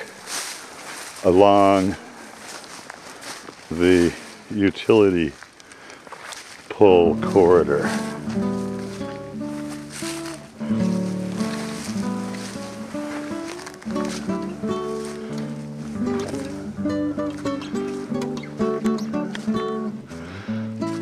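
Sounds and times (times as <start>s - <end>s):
acoustic guitar playing: 6.8s - 21.0s.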